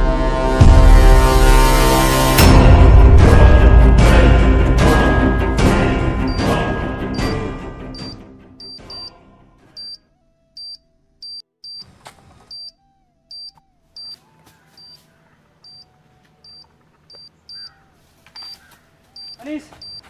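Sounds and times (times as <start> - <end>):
soft background music: 0.6 - 11.8
short high-pitched electronic beeps: 19.2 - 20.0.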